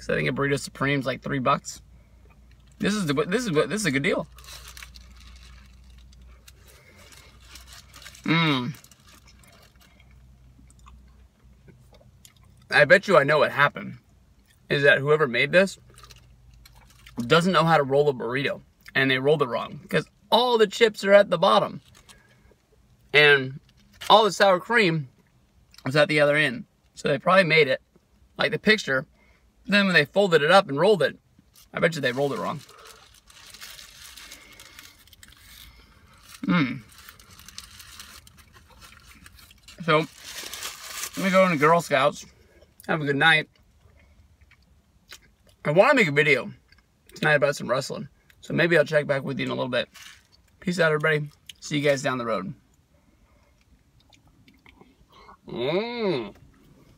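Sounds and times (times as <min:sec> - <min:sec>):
low steady car cabin hum: 0:00.0 - 0:56.9
paper wrapper crinkling: 0:02.8 - 0:09.9, 0:31.5 - 0:41.9, 0:49.9 - 0:50.3.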